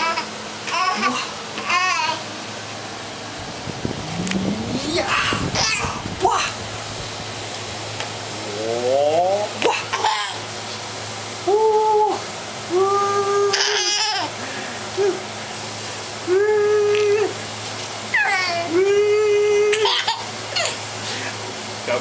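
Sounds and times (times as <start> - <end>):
baby laughing: 0.0 - 2.2, 9.6 - 10.4, 13.5 - 14.3, 19.7 - 20.8.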